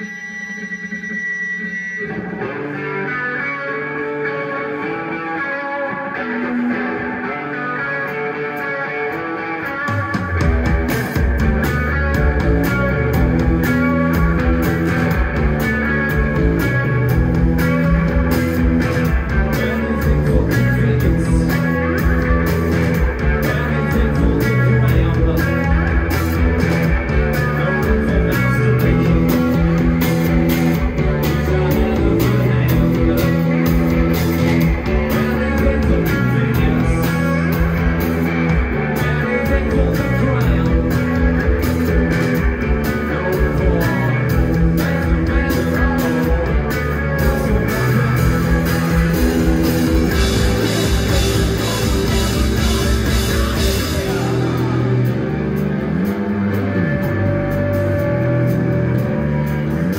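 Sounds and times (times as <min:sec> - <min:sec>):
bass guitar: 0:00.0 - 0:59.9
drums: 0:00.0 - 0:59.9
electric guitar: 0:00.0 - 0:59.9
live rock band playing: 0:00.0 - 0:59.9.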